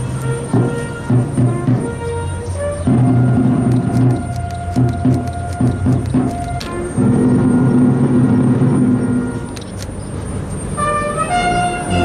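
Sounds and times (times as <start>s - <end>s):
brass band playing: 0.0s - 9.6s, 10.8s - 12.0s.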